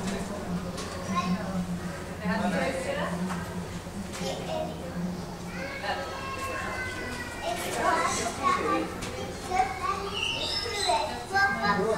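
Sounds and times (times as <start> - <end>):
children chattering: 0.0 - 11.9.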